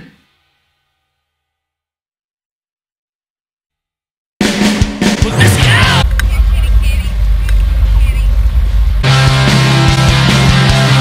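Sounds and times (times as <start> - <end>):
boat engine rumble: 5.9 - 10.0.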